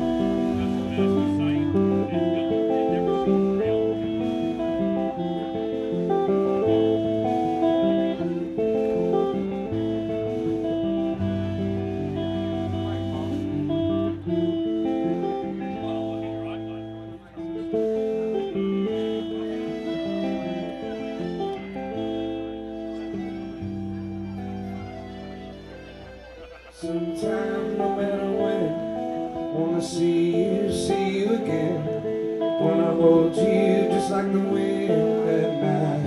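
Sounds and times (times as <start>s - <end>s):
rock band playing: 0.0s - 36.0s.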